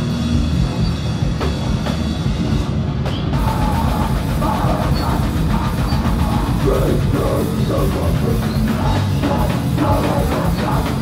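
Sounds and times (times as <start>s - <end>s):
bass guitar: 0.0s - 11.0s
drum kit: 0.0s - 11.0s
electric guitar: 0.0s - 11.0s.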